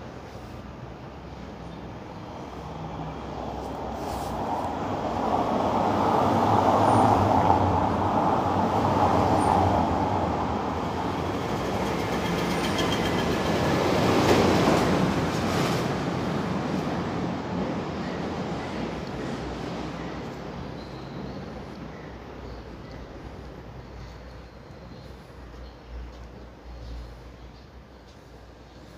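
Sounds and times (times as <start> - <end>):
traffic passing close by: 0.1 - 28.9.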